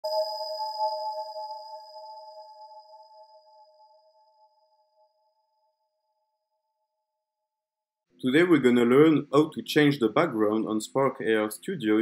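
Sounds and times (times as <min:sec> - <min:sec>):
electronic bell-like chime: 0:00.0 - 0:05.4.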